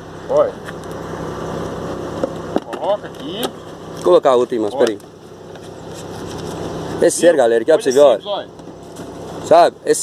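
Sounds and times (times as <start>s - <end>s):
vehicle engine humming: 0.0s - 10.0s.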